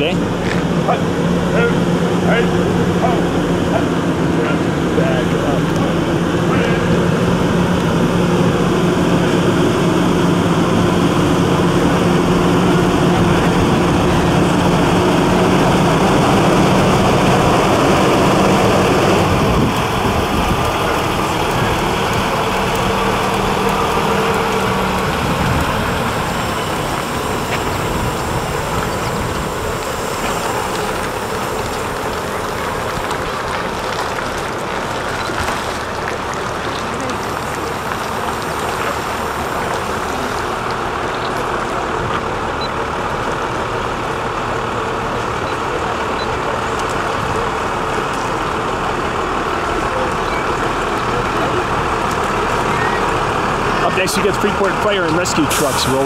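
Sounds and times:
rumble of slow vehicles: 0.0s - 56.0s
truck diesel engine droning: 0.0s - 56.0s.

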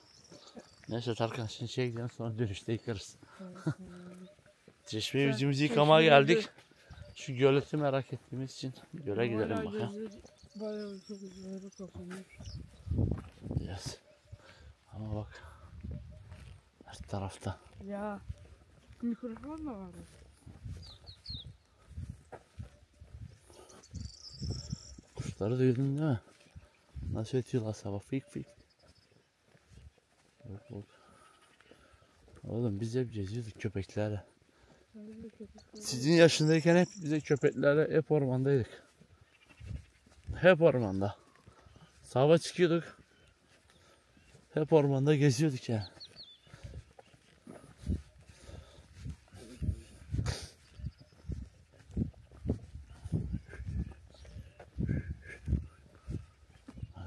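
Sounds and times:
faint birds calling: 0.0s - 16.8s, 17.5s - 33.5s, 34.3s - 57.0s
footsteps on muddy dirt track: 0.0s - 57.0s.

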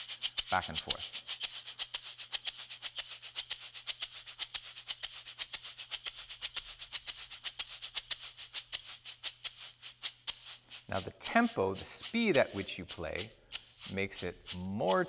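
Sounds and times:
tube shaker rattling: 0.0s - 15.0s.

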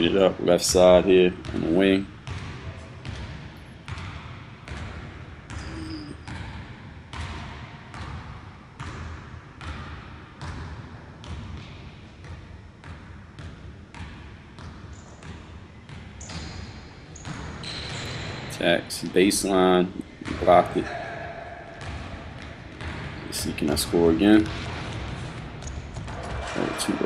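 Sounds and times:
basketball bouncing on hardwood: 1.4s - 18.2s, 20.1s - 23.7s, 24.4s - 26.6s.

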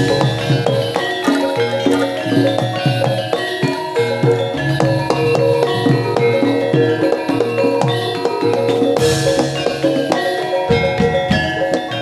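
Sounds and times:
drum strokes with bending pitch: 0.0s - 12.0s
ringing gong-chime and metallophone: 0.0s - 12.0s.

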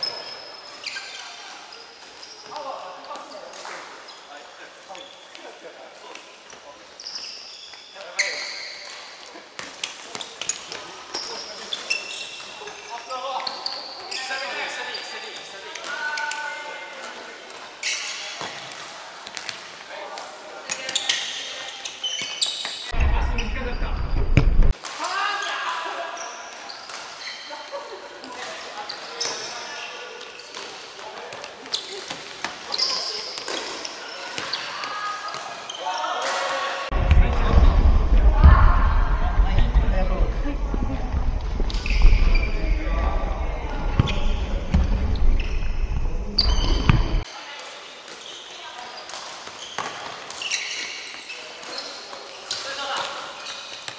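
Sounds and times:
ball kicked and bouncing on wood: 23.0s - 24.7s
low rumble: 23.0s - 24.7s, 36.9s - 47.2s.

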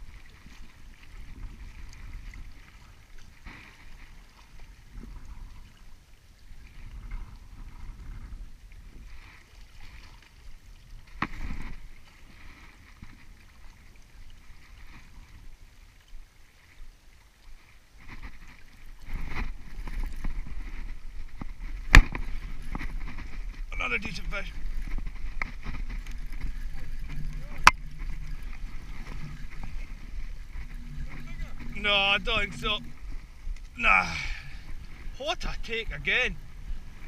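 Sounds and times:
wind on microphone: 0.0s - 15.7s, 18.0s - 37.0s
water along rocky shore: 0.0s - 37.0s.

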